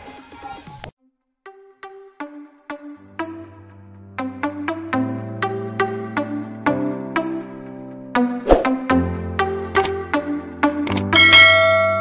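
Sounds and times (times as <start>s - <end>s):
notification bell ding: 11.2s - 12.0s.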